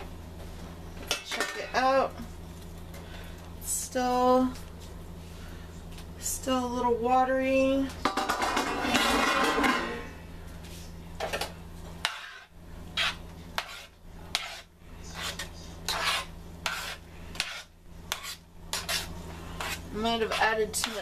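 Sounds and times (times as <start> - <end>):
metal spoon stirring food: 11.3 - 21.0.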